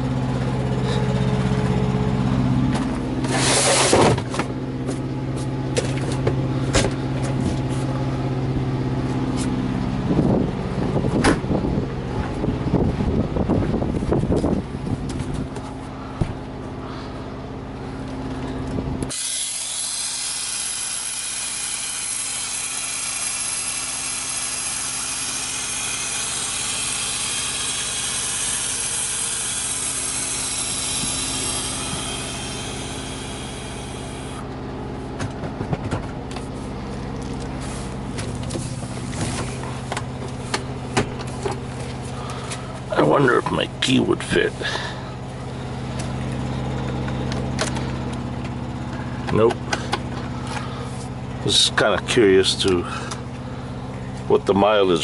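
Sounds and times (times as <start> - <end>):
diesel truck engine idling: 0.0 - 55.0
engine knocks and rattles: 0.0 - 55.0.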